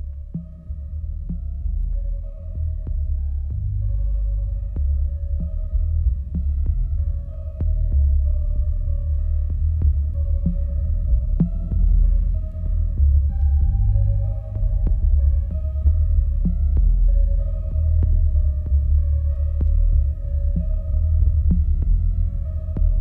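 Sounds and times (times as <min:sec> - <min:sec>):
deep throbbing bass pulse: 0:00.0 - 0:23.0
electronic music from vinyl record: 0:00.0 - 0:23.0.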